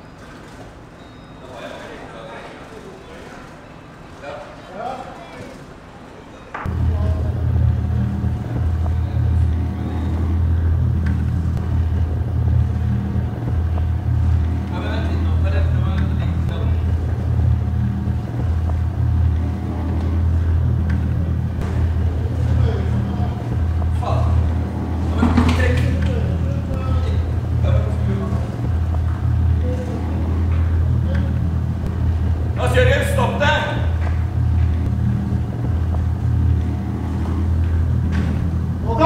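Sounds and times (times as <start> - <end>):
boat engine droning: 0.0 - 39.0.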